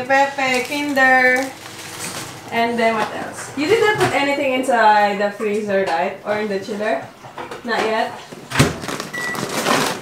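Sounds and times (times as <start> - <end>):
plastic bag rustling: 0.0 - 4.1, 8.6 - 10.0.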